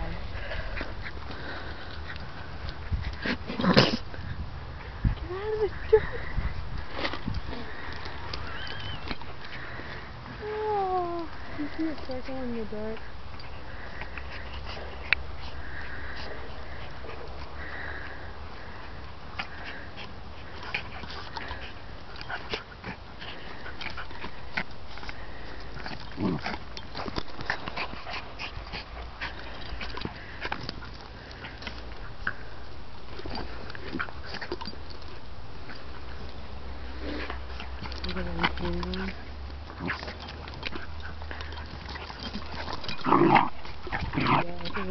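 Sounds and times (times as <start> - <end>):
dogs mouthing clicks and scuffles: 0.0 - 44.9
dogs snuffling and breathing: 0.0 - 44.9.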